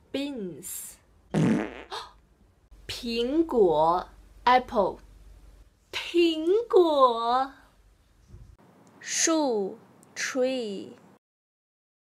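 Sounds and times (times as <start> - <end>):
buzzy fart-like rasp: 1.3 - 2.0.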